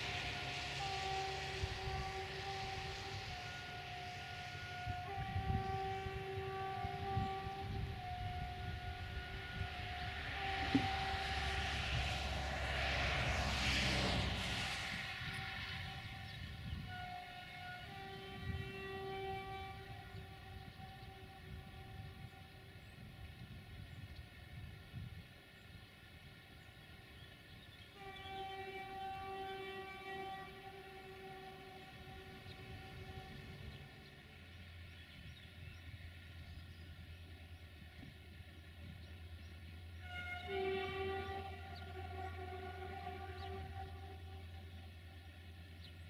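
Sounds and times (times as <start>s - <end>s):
distant locomotive horn: 0.0s - 46.0s.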